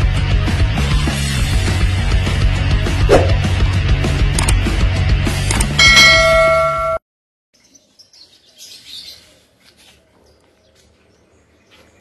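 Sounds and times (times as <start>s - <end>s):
loud intro music: 0.0s - 6.1s
notification bell ding: 5.8s - 7.0s
birds chirping: 7.6s - 12.0s.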